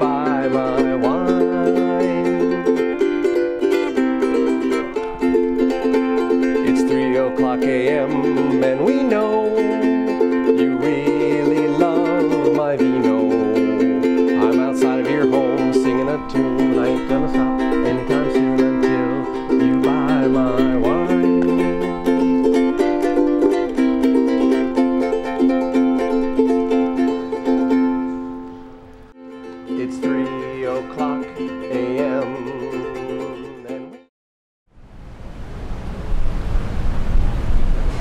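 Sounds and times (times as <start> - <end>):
strummed ukulele music: 0.0 - 34.1
steady noisy rumble: 34.8 - 38.0.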